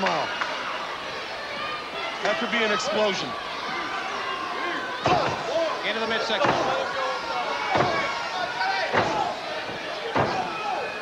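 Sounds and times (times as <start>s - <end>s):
arena crowd din: 0.0s - 11.0s
thuds of blows: 8.9s - 10.6s.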